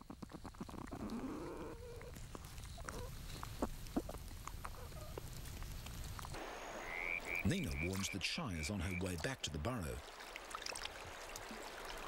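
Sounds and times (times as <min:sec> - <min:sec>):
hissing creek ambience: 0:00.0 - 0:12.0.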